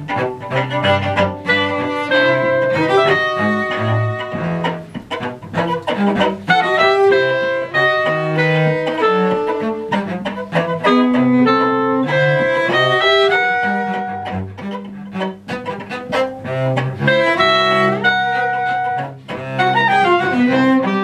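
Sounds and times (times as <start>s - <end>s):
string ensemble playing: 0.0s - 21.0s.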